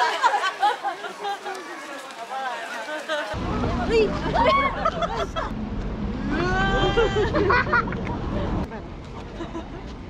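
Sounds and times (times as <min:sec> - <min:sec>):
people laughing and exclaiming: 0:00.0 - 0:05.5, 0:06.3 - 0:08.6
low rumble of road traffic: 0:03.4 - 0:10.0
person shrieking: 0:06.2 - 0:07.4.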